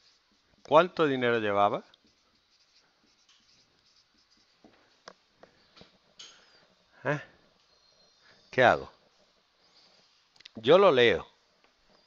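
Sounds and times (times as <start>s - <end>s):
marker writing on whiteboard: 0.0s - 6.2s.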